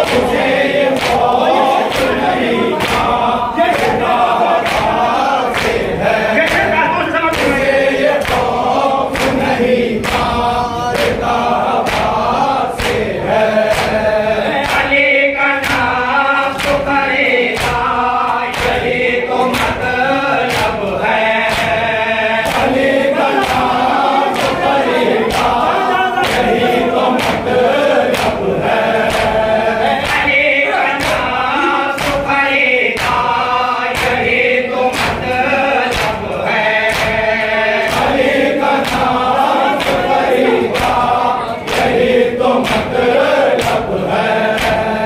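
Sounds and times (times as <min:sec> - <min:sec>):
lead voice chanting: 0:00.0 - 0:45.0
men chanting in unison: 0:00.0 - 0:45.0.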